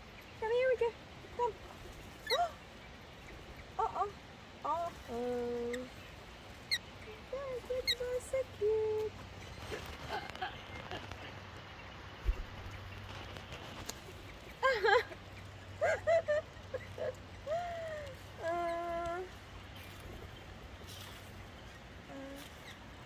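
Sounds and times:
parrots chirping: 0:05.6 - 0:07.1
person cooing and murmuring: 0:17.0 - 0:19.3, 0:22.1 - 0:22.6.

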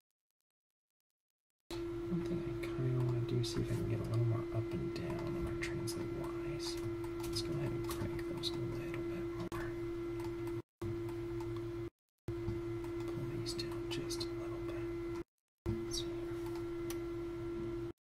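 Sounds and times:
steady electrical hum: 0:01.7 - 0:18.0
computer mouse and keyboard clicks: 0:02.9 - 0:04.3, 0:05.0 - 0:08.7.

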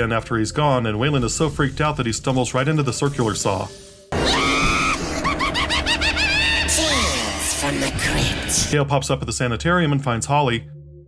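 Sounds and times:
man screaming: 0:04.2 - 0:05.2
shrill rapid cackling laugh: 0:04.3 - 0:07.0.

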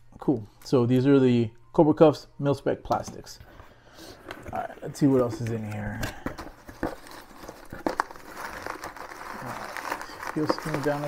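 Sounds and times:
packaging rustling: 0:04.2 - 0:11.0.

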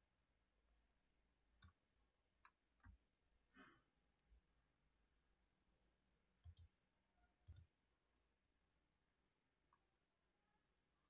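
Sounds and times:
computer mouse clicks: 0:06.4 - 0:06.8, 0:07.4 - 0:07.7.

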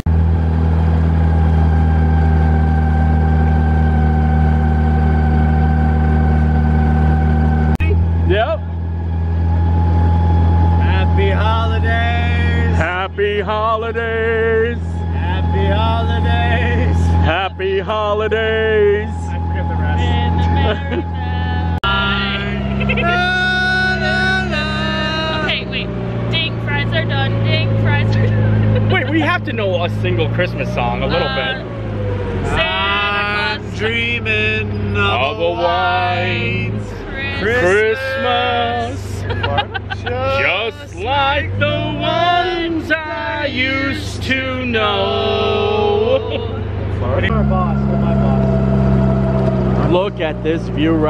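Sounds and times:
car engine droning: 0:00.0 - 0:51.0
held musical tone: 0:01.5 - 0:51.0
people talking: 0:07.7 - 0:08.7, 0:10.8 - 0:31.7, 0:32.4 - 0:48.7, 0:49.8 - 0:51.0.

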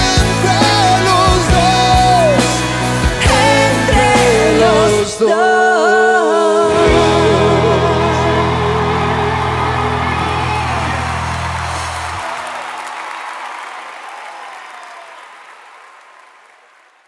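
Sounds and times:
live band chord: 0:00.0 - 0:05.1, 0:06.6 - 0:12.2
crowd applauding and cheering: 0:06.7 - 0:17.0.

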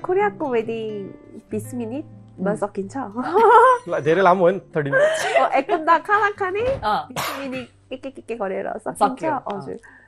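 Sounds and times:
man coughing: 0:07.2 - 0:07.7.

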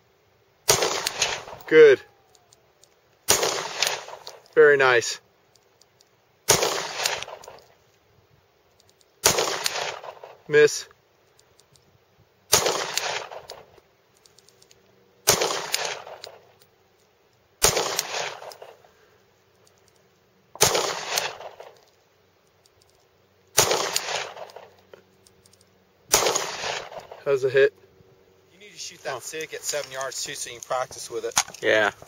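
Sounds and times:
pistol shots with echo: 0:00.6 - 0:01.9, 0:03.3 - 0:04.4, 0:06.5 - 0:07.7, 0:09.2 - 0:10.5, 0:12.5 - 0:13.8, 0:15.2 - 0:16.5, 0:17.6 - 0:18.8, 0:20.6 - 0:21.8, 0:23.6 - 0:24.8, 0:26.1 - 0:27.2.

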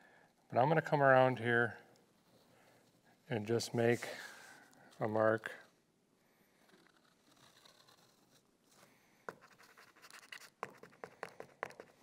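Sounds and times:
marker scratching on carpet backing: 0:09.3 - 0:12.0.

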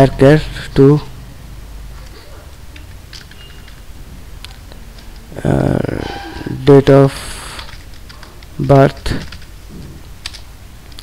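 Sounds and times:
computer keyboard keystrokes: 0:02.7 - 0:03.8, 0:07.6 - 0:09.5, 0:10.2 - 0:11.0.

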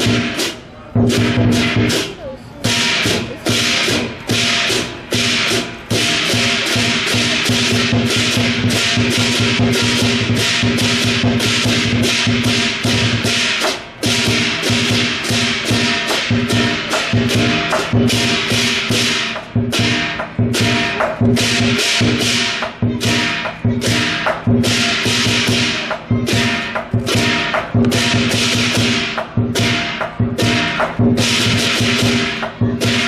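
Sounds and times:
crashing cymbals: 0:00.0 - 0:33.0
rapid drum beats: 0:00.0 - 0:33.0.

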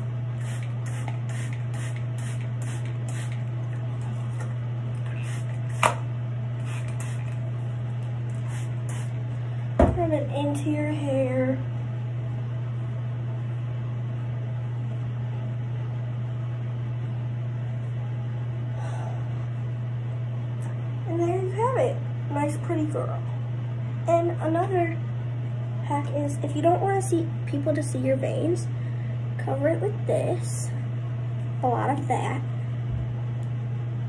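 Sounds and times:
low hum: 0:00.0 - 0:34.0
spray bottle squirting: 0:00.4 - 0:03.4, 0:06.6 - 0:07.4
thump: 0:09.8 - 0:10.0.

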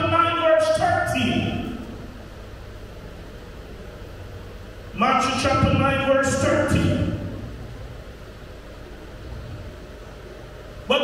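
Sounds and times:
man's voice echoing: 0:00.0 - 0:02.0, 0:04.9 - 0:07.5
low hum and hiss: 0:00.0 - 0:11.0.

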